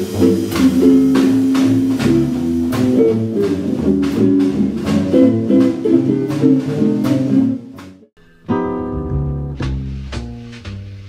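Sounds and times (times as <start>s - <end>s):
jazz electric guitar chords: 0.0s - 11.0s.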